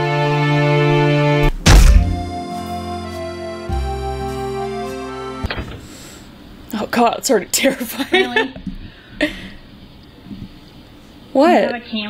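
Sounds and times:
background music: 0.0 - 5.9
heavy thunk impact: 1.4 - 2.4.

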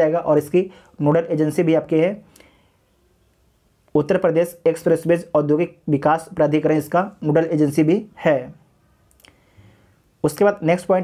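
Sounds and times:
man speaking: 0.0 - 2.3, 3.9 - 8.7, 10.2 - 11.0.

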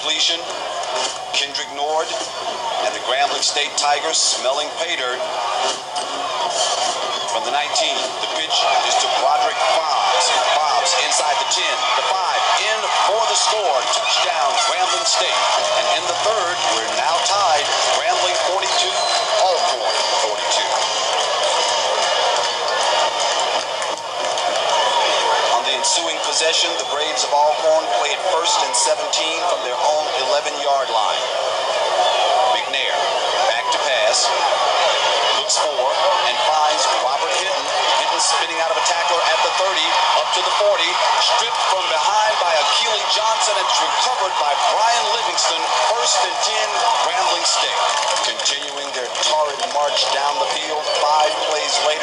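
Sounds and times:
man narrating: 0.0 - 0.5, 1.3 - 5.3, 7.3 - 21.1, 25.5 - 31.3, 32.3 - 34.4, 35.3 - 52.0
stadium crowd cheering: 0.0 - 52.0.

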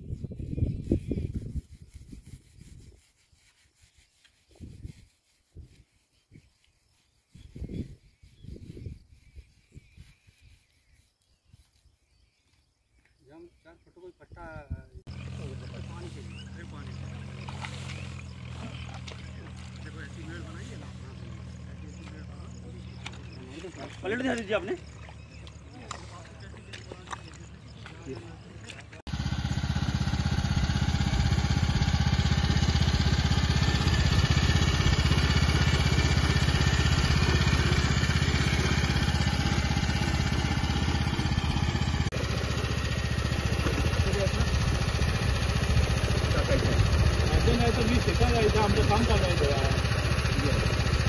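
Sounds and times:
low motor drone: 15.1 - 51.0
small engine running steadily: 15.1 - 51.0.

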